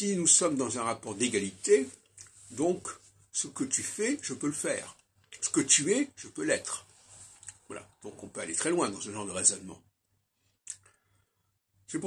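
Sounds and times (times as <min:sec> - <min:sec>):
man speaking: 0:00.0 - 0:07.0, 0:07.6 - 0:09.9.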